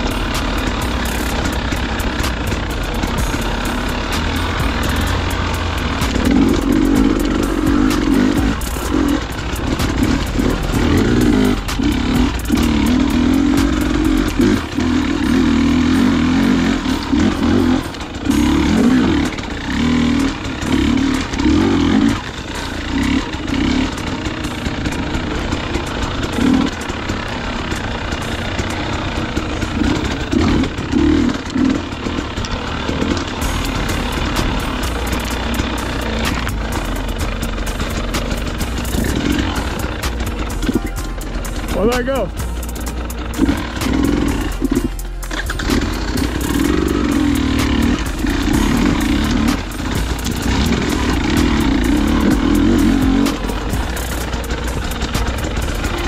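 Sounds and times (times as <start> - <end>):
dirt bike engine revving: 0.0 - 56.0.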